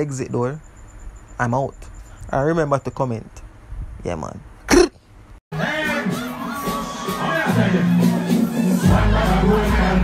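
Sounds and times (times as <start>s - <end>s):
heavy bass line: 5.5s - 10.0s
loud dancehall music: 5.5s - 10.0s
crowd shouting and cheering: 5.6s - 10.0s.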